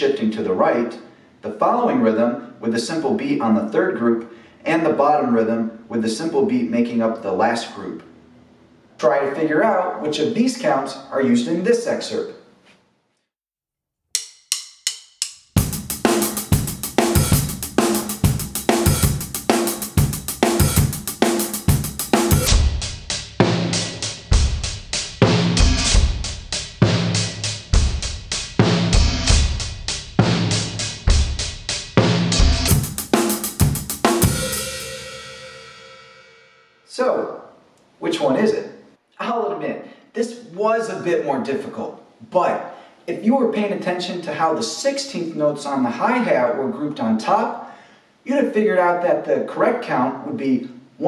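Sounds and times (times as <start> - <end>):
drum kit playing a groove: 14.2 - 36.2
cymbal hit ringing out: 32.4 - 36.6.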